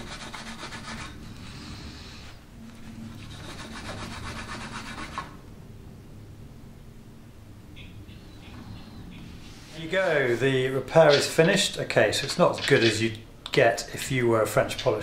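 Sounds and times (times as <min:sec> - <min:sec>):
cloth rubbing on wooden pole: 0:00.0 - 0:01.6, 0:02.2 - 0:05.4, 0:09.4 - 0:11.4.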